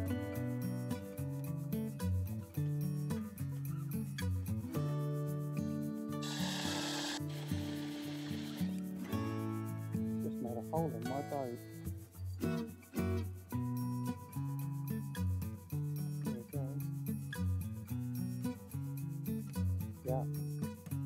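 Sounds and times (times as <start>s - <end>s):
guitar music: 0.0s - 21.0s
cordless drill boring into steel: 6.2s - 8.8s.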